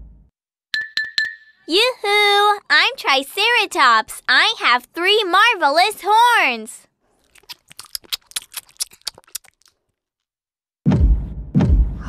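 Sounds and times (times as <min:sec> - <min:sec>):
cartoon crunching: 0:07.1 - 0:10.0
heavy low thud: 0:10.9 - 0:12.0.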